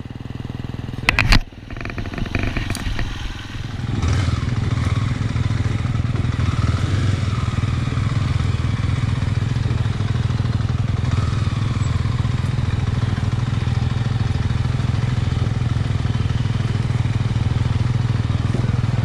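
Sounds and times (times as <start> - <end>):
dirt bike engine at low revs: 0.0 - 19.0.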